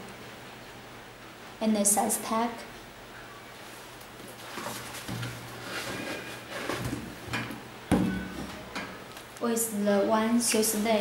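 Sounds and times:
sneakers rustling on cardboard boxes: 3.7 - 7.3.

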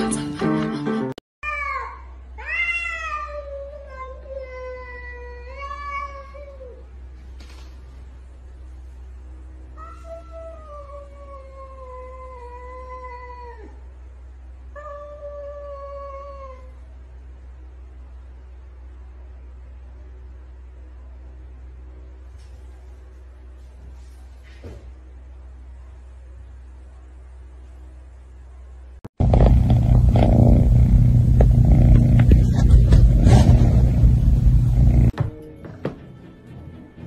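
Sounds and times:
cats yowling: 1.4 - 6.6
steady low hum: 3.3 - 35.2.

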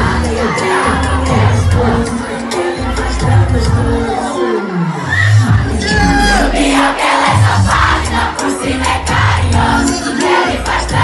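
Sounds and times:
crowd shouting and cheering: 0.0 - 11.0
loud party music: 0.0 - 11.0.

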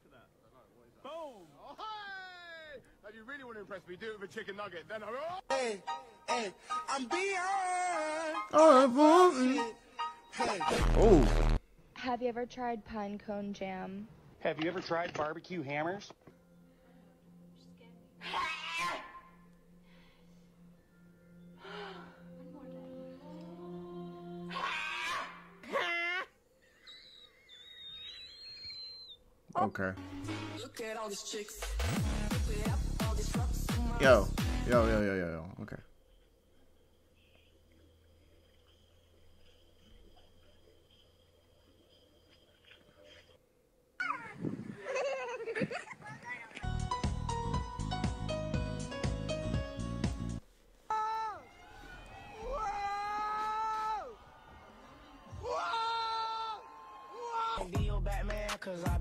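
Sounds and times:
animal yelping calls: 18.2 - 19.4, 24.5 - 29.2.

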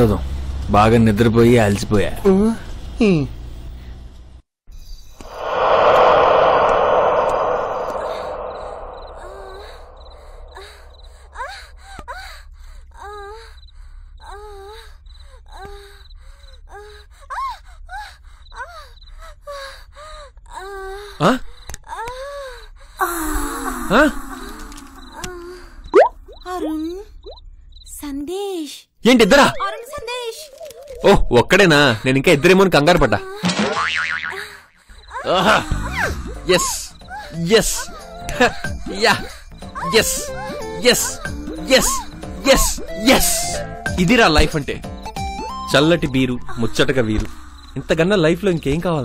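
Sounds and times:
person moaning: 23.0 - 24.6.

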